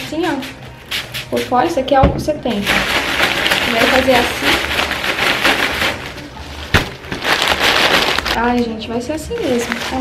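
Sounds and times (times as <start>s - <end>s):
plastic bag rustling: 2.5s - 10.0s.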